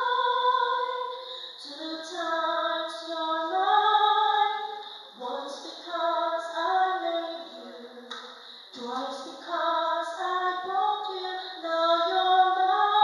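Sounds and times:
woman singing into a microphone: 0:00.0 - 0:13.0.

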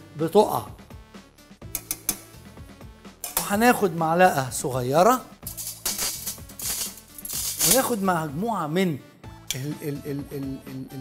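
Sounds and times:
quiet background music: 0:00.0 - 0:11.0
tongs clicking against plate: 0:01.7 - 0:02.3.

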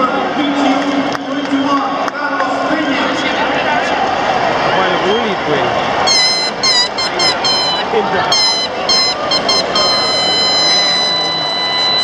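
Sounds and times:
crowd hubbub: 0:00.0 - 0:12.0
high-pitched horn blowing: 0:06.1 - 0:12.0.

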